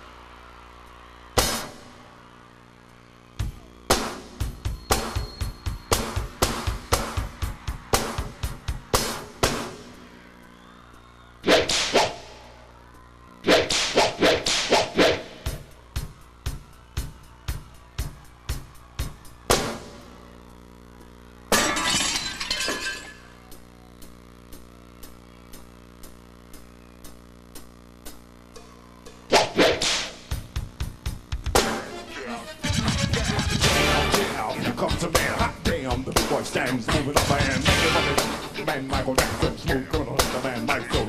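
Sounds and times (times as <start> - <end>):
quick drum hits: 1.4 - 1.8, 3.9 - 9.9
live concert music: 3.4 - 10.2, 28.2 - 41.0
sharp whip-crack hit: 11.5 - 12.2, 13.5 - 15.2.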